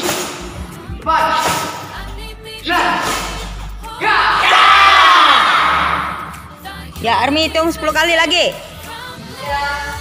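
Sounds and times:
group of children shouting: 4.0s - 6.1s.

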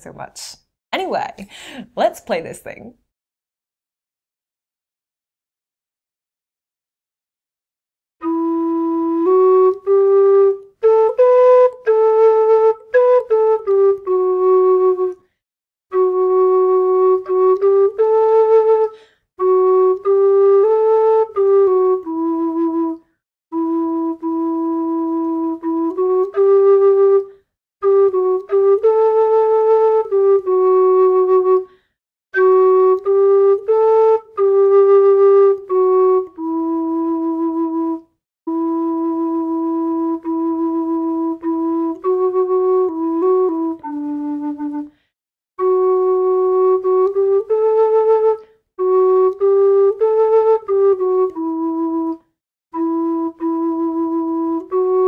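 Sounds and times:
tin whistle melody: 8.2s - 55.0s.

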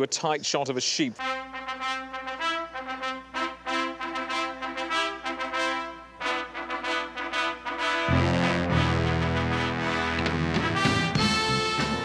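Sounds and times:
brass melody of short notes: 1.2s - 12.0s
held low brass notes: 1.2s - 12.0s.

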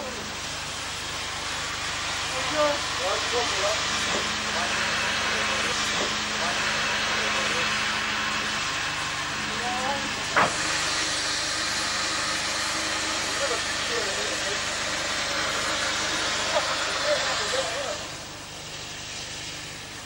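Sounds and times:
steam locomotive hissing: 0.0s - 20.0s.

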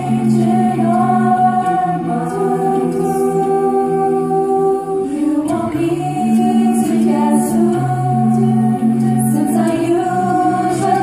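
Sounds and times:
choir singing a cappella: 0.0s - 11.0s.

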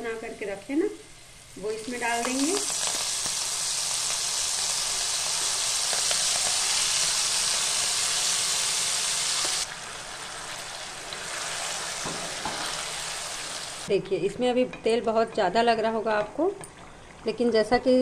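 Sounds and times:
paste sizzling in hot oil: 0.7s - 13.9s.

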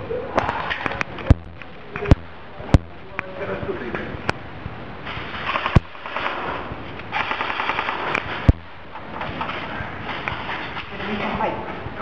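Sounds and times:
sharp loud cracks: 5.2s - 8.9s
airsoft rifle automatic bursts: 5.5s - 8.4s.

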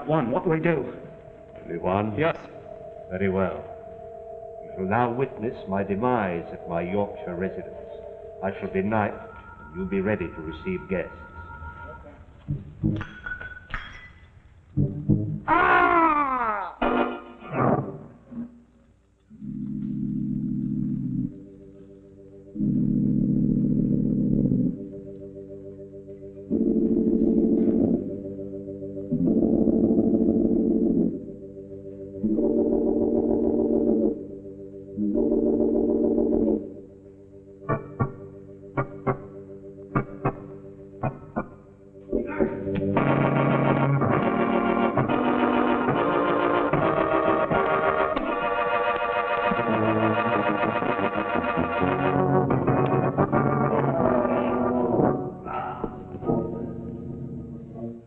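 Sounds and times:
organ suspense music: 0.0s - 14.1s, 14.7s - 15.6s, 16.8s - 58.0s.

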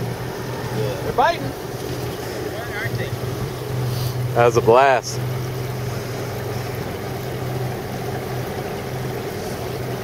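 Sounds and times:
boat motor idling: 0.0s - 10.0s
water noise: 0.0s - 10.0s
wind: 0.0s - 10.0s.

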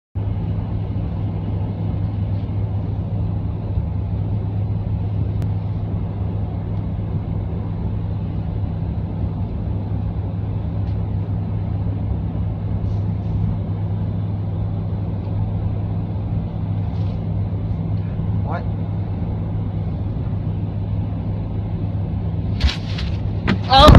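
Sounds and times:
car engine hum: 0.2s - 23.9s
tyre and road noise: 22.4s - 23.9s.

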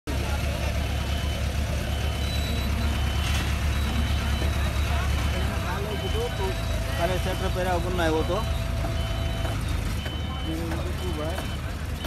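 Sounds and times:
large engine running: 0.1s - 12.0s.

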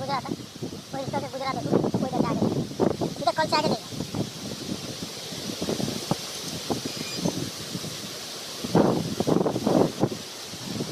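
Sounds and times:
rustling leaves: 0.0s - 10.9s
wind buffeting microphone: 0.0s - 10.9s.

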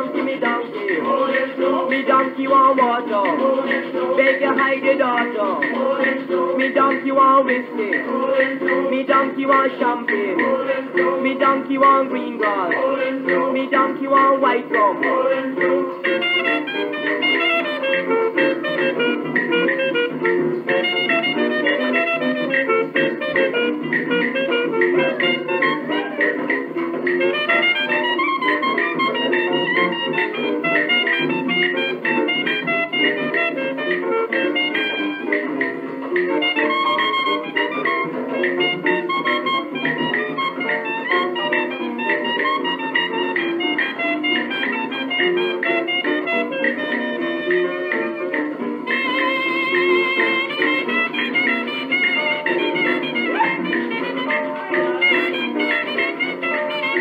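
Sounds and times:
calypso band instrumental record: 0.0s - 57.0s.

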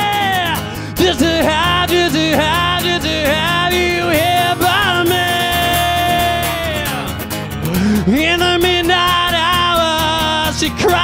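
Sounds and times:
person singing: 0.0s - 11.0s
strummed acoustic guitar: 0.0s - 11.0s.

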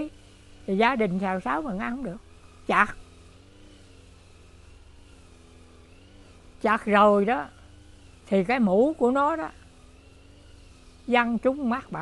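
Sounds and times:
faint engine hum: 0.0s - 12.0s.

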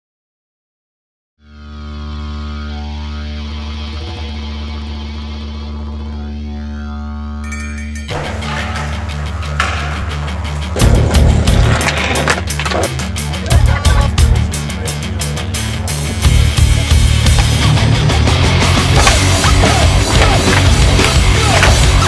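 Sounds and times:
sustained droning tone: 1.4s - 14.0s
rock music with heavy drums: 8.1s - 22.0s.

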